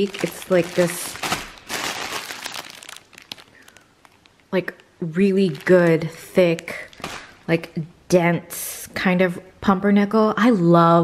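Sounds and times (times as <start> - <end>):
plastic bag crinkling: 0.0 - 7.7.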